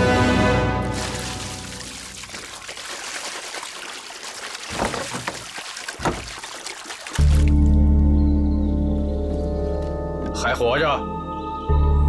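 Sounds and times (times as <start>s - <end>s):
background music: 0.0s - 2.2s, 7.2s - 12.0s
water pouring into wooden bucket: 0.7s - 7.8s.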